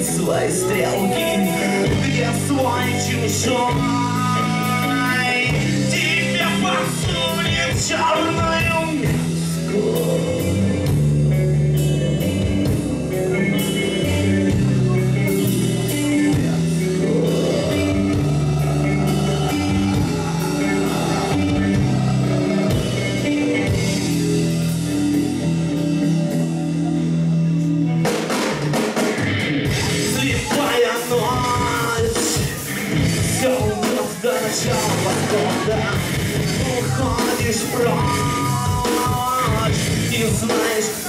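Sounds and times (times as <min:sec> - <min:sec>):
live rock band playing: 0:00.0 - 0:41.0.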